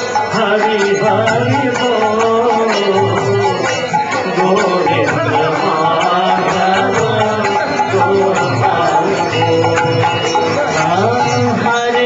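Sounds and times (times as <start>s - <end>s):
sustained accompaniment: 0.0s - 12.0s
devotional singing: 0.1s - 12.0s.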